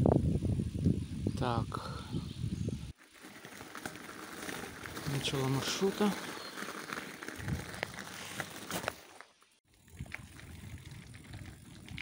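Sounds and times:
bicycle tyres crunching on gravel: 0:02.9 - 0:12.0
bike and bags rattling: 0:02.9 - 0:12.0.

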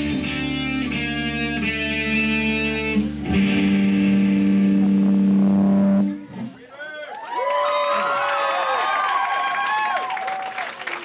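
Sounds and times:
electric guitar chords ringing: 0:00.0 - 0:06.6.

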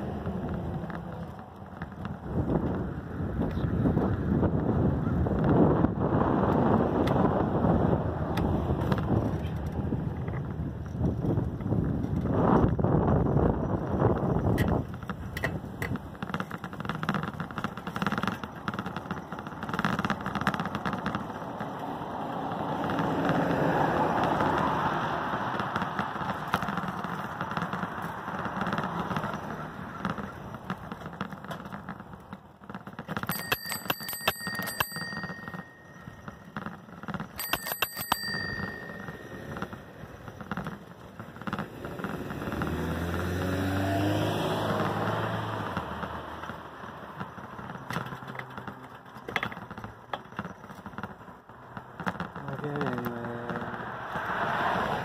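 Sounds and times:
wind and road noise: 0:00.0 - 0:55.0
passing motor vehicle engine: 0:19.6 - 0:31.2, 0:38.9 - 0:50.1, 0:51.3 - 0:55.0
bicycle bell ringing: 0:33.1 - 0:41.1.

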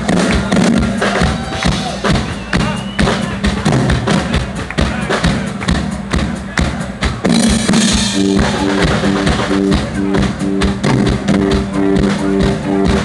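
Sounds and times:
drums hitting a steady beat: 0:00.0 - 0:13.0.

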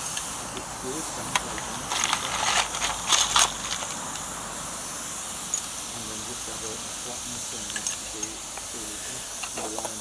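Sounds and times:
steam hissing: 0:00.0 - 0:10.0
metallic clicks and rattles: 0:07.7 - 0:08.7.

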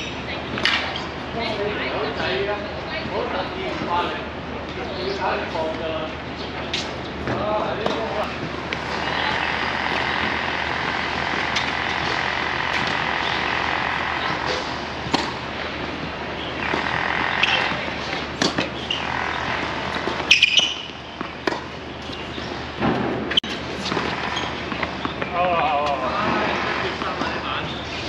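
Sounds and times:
city noise hum: 0:00.0 - 0:28.0
tennis ball knocks: 0:06.7 - 0:15.5, 0:16.6 - 0:21.8.

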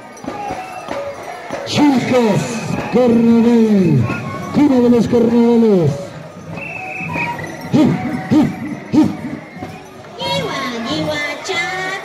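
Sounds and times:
voices singing and calling out: 0:00.0 - 0:12.0.

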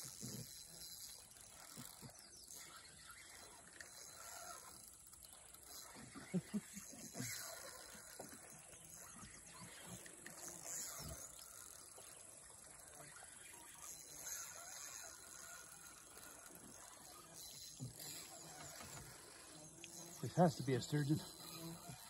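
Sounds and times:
high insect drone: 0:00.0 - 0:22.0.

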